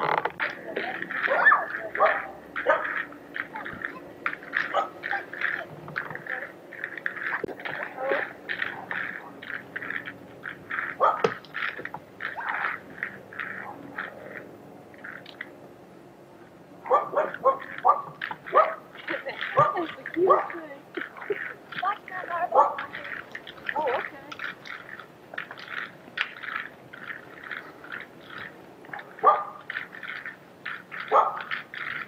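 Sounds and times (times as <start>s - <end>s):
dog barking: 1.3s - 3.0s, 4.7s - 5.0s, 11.0s - 11.4s, 16.8s - 18.8s, 19.6s - 20.6s, 22.5s - 22.9s, 29.2s - 29.6s, 31.1s - 31.5s.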